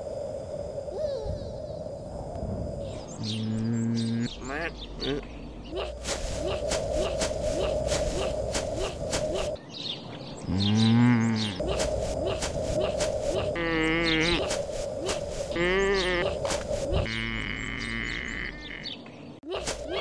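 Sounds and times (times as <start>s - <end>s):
soundtrack hum with clicks: 2.2s - 4.9s.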